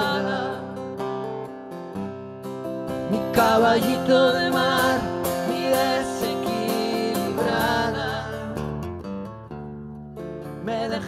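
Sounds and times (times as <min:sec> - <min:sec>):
acoustic guitar strumming: 0:00.0 - 0:11.0
woman singing with vibrato: 0:03.3 - 0:08.6.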